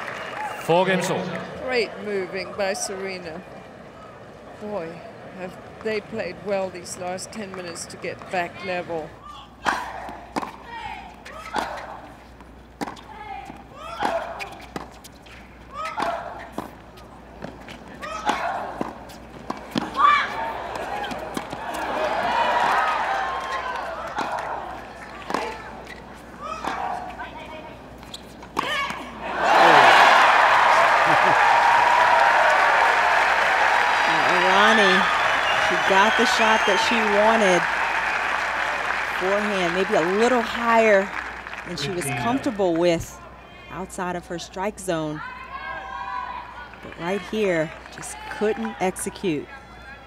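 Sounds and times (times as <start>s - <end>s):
crowd cheering and applause: 0.0s - 1.8s, 20.2s - 25.4s, 29.2s - 42.6s
crowd murmur: 0.0s - 5.8s, 29.1s - 31.6s, 38.4s - 43.7s
tennis rackets hitting balls: 9.6s - 29.0s, 34.0s - 37.7s.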